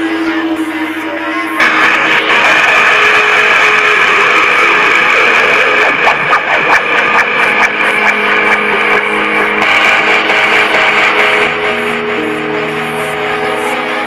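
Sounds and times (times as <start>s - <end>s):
distorted electric guitar rock: 0.0s - 14.0s.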